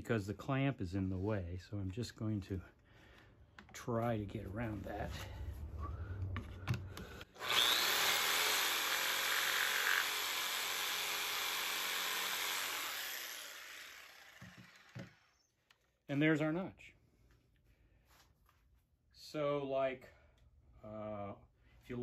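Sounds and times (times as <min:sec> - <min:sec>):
jigsaw cutting wood: 0:07.4 - 0:15.5.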